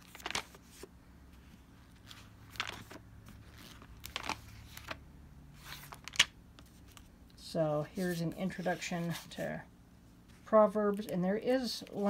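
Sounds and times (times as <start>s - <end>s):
pages being flipped: 0.0s - 5.0s, 5.6s - 7.1s.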